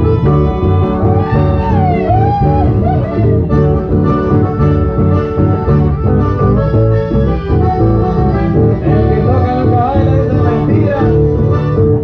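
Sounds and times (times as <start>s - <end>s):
guitars and accordion band: 0.0s - 12.0s
sliding melody line: 0.0s - 12.0s.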